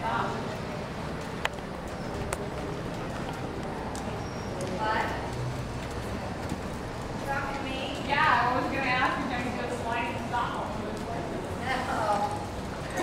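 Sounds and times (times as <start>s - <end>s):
horse hooves on soft dirt: 0.2s - 13.0s.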